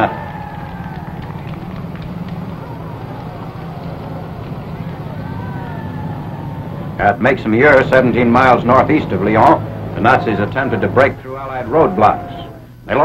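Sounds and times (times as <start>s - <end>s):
crowd cheering and shouting: 0.0s - 13.0s
low rumble of vehicle engines: 0.0s - 13.0s.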